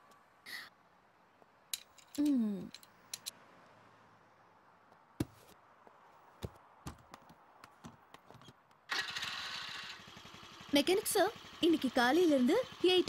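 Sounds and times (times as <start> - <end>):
scooter engine starting and running: 8.9 - 13.0.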